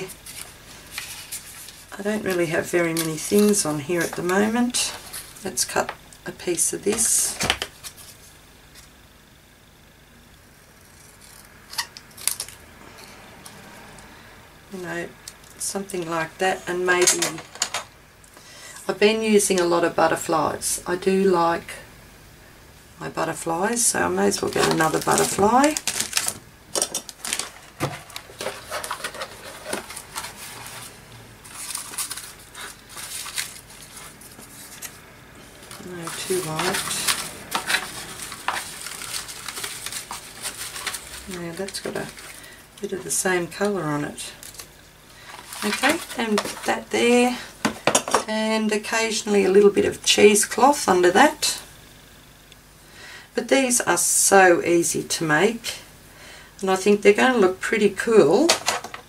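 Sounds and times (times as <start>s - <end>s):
paper rustling: 0.0s - 5.6s, 27.1s - 42.5s, 44.4s - 46.8s.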